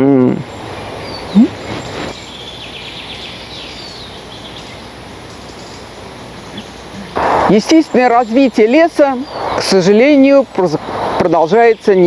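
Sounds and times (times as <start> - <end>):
outdoor hiss: 0.2 - 12.0
high bird chirps: 0.5 - 10.1.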